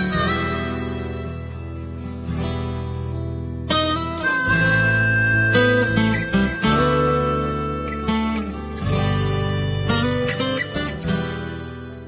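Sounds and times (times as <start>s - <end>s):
acoustic guitar strummed chords: 0.0s - 12.0s.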